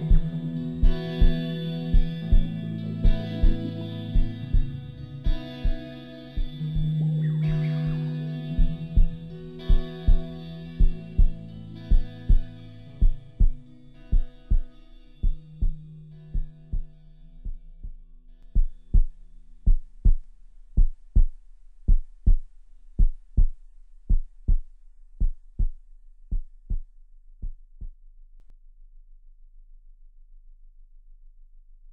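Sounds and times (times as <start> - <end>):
sustained low chords: 0.0 - 21.3
heartbeat-like double thump: 0.1 - 5.8, 8.6 - 15.8.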